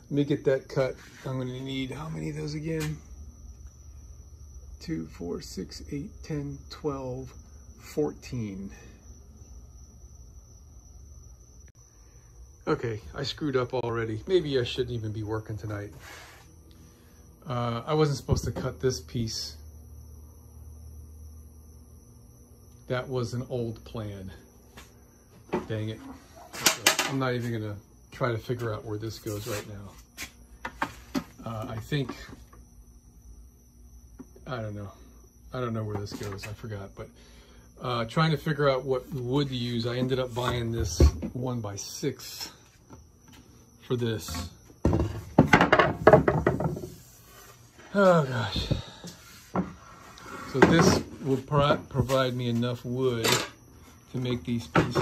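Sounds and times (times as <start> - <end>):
steady low hum: 0.0 - 55.0
board knocking on metal saw top: 44.8 - 46.9.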